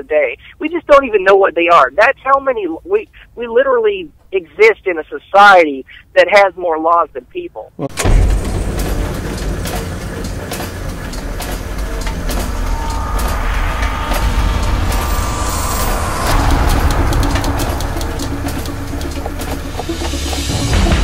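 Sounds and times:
gears clicking and clanking: 7.9 - 21.0
heavy low machinery rumble: 7.9 - 21.0.

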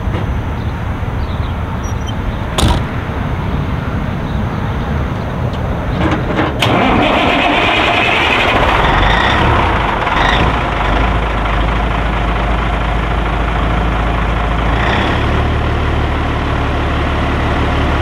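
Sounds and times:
diesel engine starting and idling: 0.0 - 18.0.

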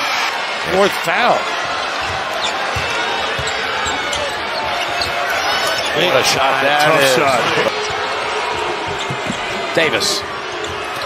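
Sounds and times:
arena crowd noise: 0.0 - 11.0
basketball bouncing on hardwood: 2.0 - 5.4, 7.8 - 9.7.

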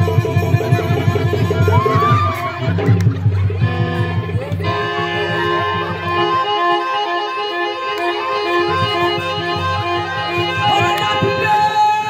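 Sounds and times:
harmonium melody: 0.0 - 12.0.

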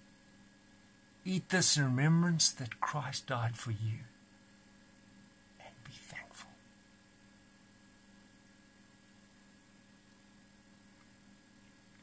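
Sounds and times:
low electrical hum: 0.0 - 12.0
faint whispering: 1.3 - 4.1, 5.6 - 6.6.

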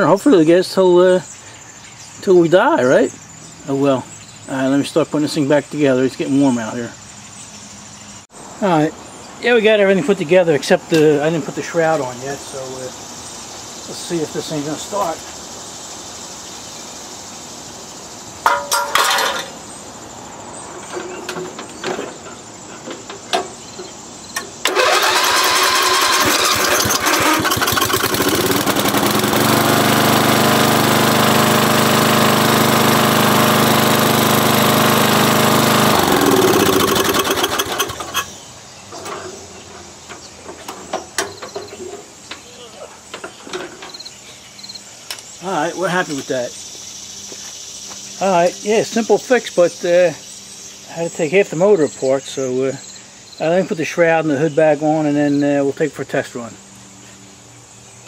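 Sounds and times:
lawn tractor engine running: 24.4 - 39.2.

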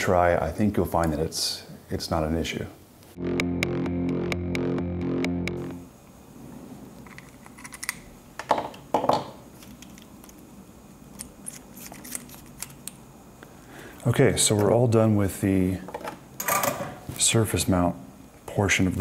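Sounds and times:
regular ticking pulse: 3.2 - 5.9
synthesizer chord: 3.2 - 6.0.

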